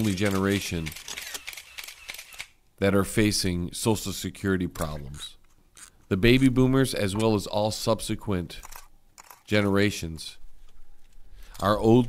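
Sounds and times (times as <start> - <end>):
man speaking: 0.0 - 1.0, 2.8 - 5.4, 6.1 - 8.6, 9.5 - 10.4, 11.6 - 12.0.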